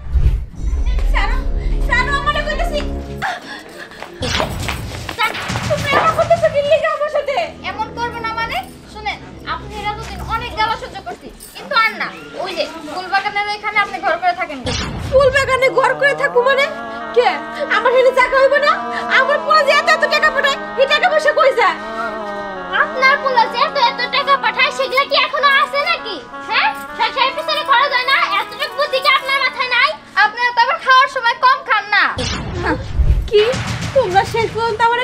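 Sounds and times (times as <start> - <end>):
soft background music: 0.6 - 32.2
women talking: 5.2 - 22.1, 22.8 - 35.0
young woman talking: 33.3 - 35.0.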